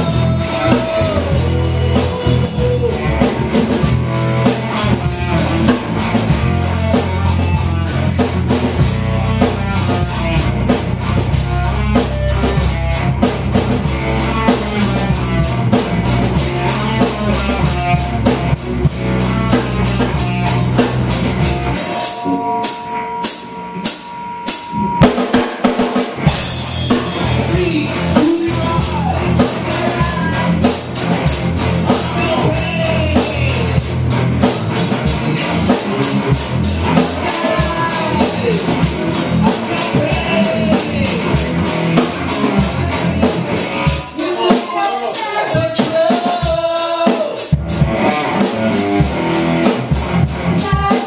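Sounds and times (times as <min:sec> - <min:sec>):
rock band playing live: 0:00.0 - 0:51.0.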